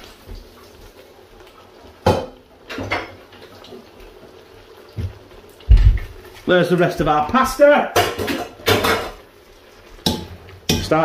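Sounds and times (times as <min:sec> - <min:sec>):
metal cookware clanking: 0:02.0 - 0:03.2, 0:07.9 - 0:09.2
heavy low thump of pan: 0:05.7 - 0:06.2.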